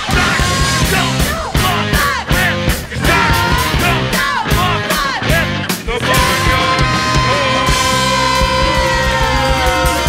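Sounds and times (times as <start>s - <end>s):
man singing: 0.0s - 10.0s
rock band with horns playing: 0.0s - 10.0s.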